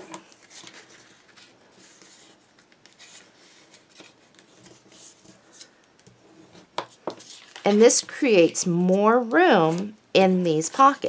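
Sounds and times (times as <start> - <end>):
paper rustling: 0.0 - 9.9.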